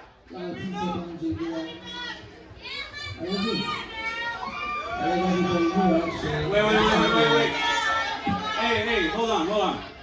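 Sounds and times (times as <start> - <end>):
crowd voices calling and talking: 0.0 - 10.0.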